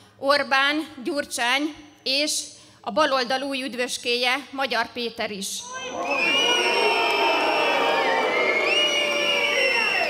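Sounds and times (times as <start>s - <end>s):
crowd booing: 5.8s - 10.0s
crowd whistling: 5.8s - 10.0s.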